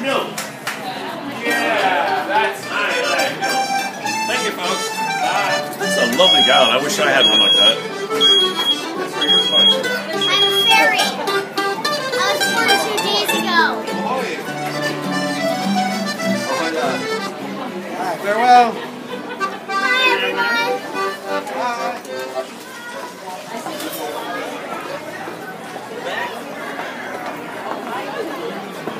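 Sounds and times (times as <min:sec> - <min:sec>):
crowd talking and laughing: 0:00.0 - 0:28.9
piano accordion playing: 0:02.6 - 0:22.5.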